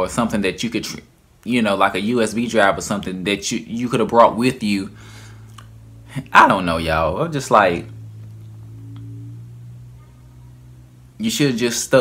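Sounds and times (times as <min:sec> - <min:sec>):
low hum: 0:01.2 - 0:12.0
faint high tone: 0:07.8 - 0:11.2.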